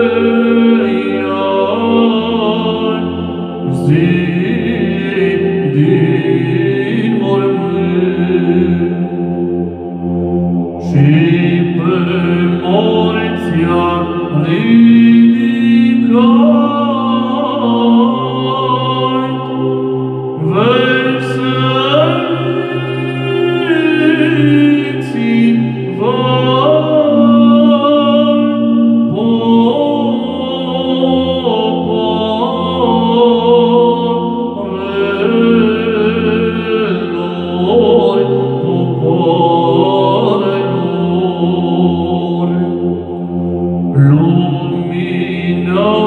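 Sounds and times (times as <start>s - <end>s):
man singing chant: 0.0s - 46.0s
steady low drone: 0.0s - 46.0s.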